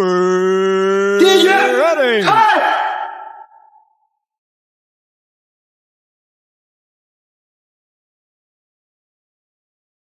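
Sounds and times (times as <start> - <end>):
man shouting with echo: 1.2 - 3.8.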